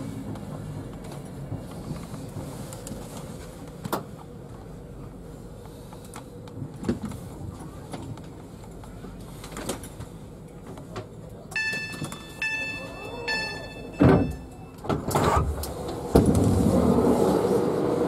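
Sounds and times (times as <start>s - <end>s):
station background noise: 0.0s - 18.0s
electronic chord beeps: 11.6s - 14.8s.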